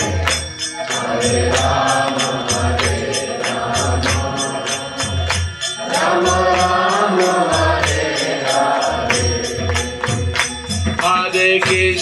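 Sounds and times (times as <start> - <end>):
hand cymbals striking: 0.0 - 12.0
voices chanting: 1.0 - 10.1.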